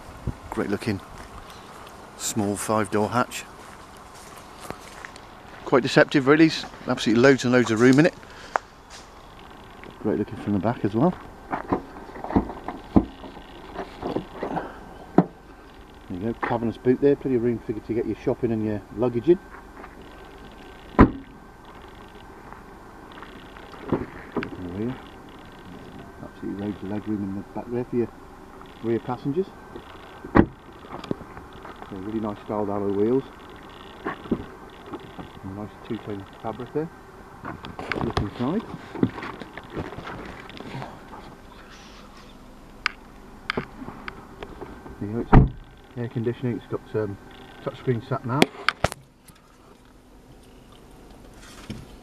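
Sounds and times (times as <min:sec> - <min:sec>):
microphone handling noise: 0:00.0 - 0:01.9
car tailgate slamming shut: 0:21.0 - 0:21.3, 0:45.3 - 0:45.6.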